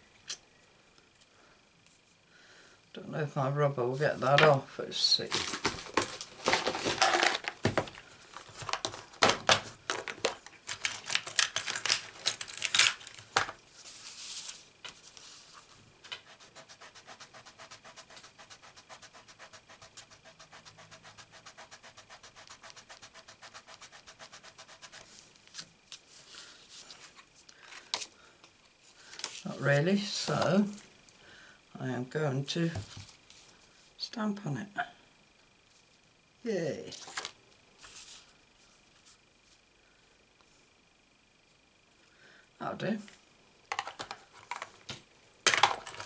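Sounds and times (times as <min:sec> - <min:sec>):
eraser scrubbing on card: 0:16.2 - 0:25.2
objects clicking and knocking: 0:43.7 - 0:44.8, 0:45.5 - 0:46.0.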